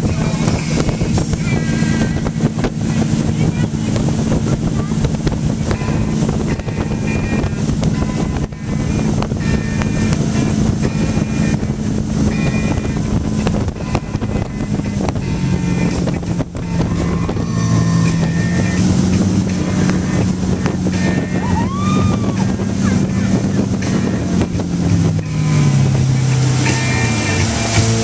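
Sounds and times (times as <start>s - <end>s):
boat motor running: 0.0s - 28.0s
rushing wake water: 0.0s - 28.0s
wind on microphone: 0.0s - 28.0s.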